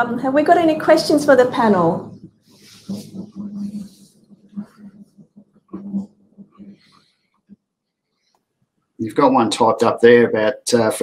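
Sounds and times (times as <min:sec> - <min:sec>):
faint wordless voice hums: 0:02.0 - 0:06.9.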